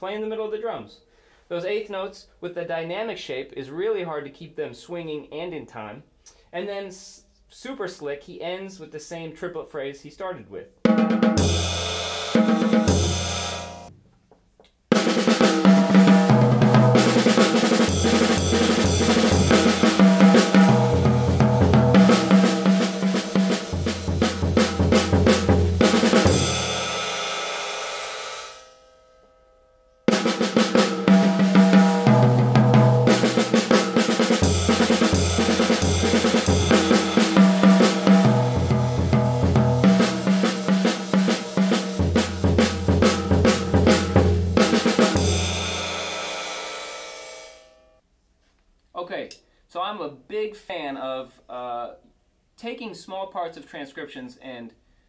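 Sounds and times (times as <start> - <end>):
jazz drum solo with sticks: 10.8 - 13.9, 14.9 - 28.7, 30.1 - 47.7.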